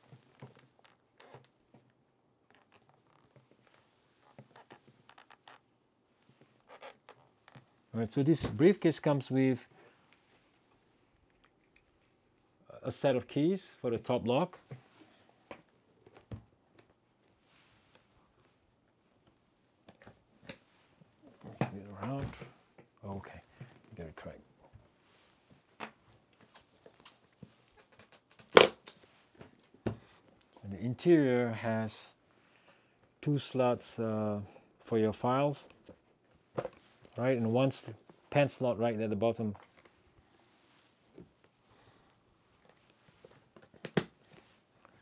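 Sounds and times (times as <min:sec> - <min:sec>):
briefcase rustle: 0:02.5 - 0:05.7, 0:39.6 - 0:45.0.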